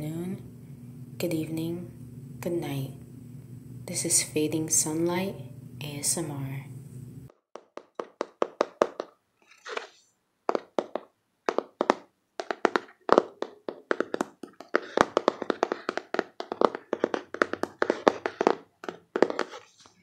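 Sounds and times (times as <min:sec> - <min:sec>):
fingers tapping on cardboard box: 0:11.8 - 0:19.5.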